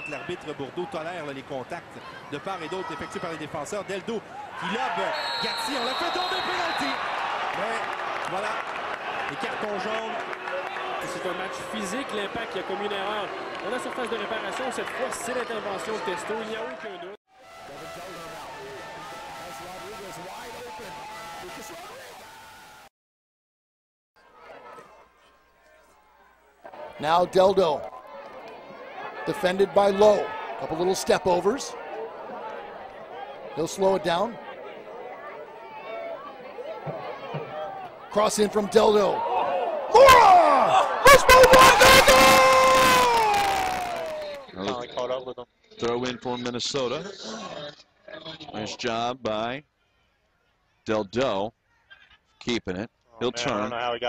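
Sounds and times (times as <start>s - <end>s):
stadium crowd cheering: 0.0s - 22.9s, 24.2s - 44.6s
crowd murmur: 27.9s - 38.2s
long loud shout: 39.2s - 44.4s.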